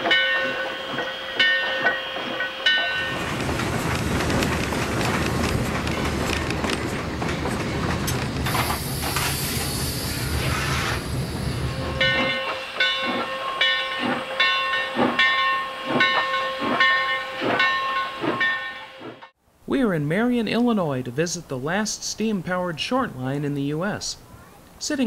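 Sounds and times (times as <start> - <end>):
steam hiss and rumble: 3.0 - 12.8
locomotive exhaust chuffs: 3.0 - 13.3.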